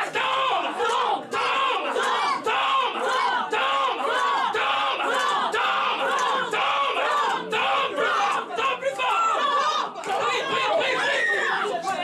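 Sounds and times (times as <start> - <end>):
crowd of voices: 0.0 - 12.0.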